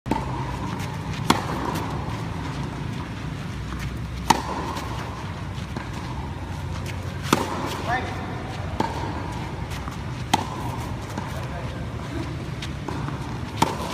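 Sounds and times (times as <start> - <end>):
tennis racket hitting ball: 0.1 - 11.9, 12.6 - 13.9
steady low hum: 0.1 - 13.9.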